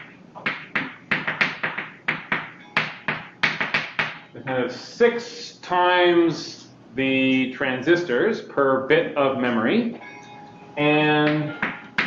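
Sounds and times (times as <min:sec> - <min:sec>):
chalk tapping on chalkboard: 0:00.0 - 0:04.2.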